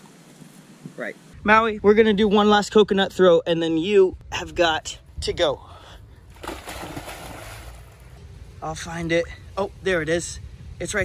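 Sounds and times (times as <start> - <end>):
dog splashing through water: 6.4 - 7.8.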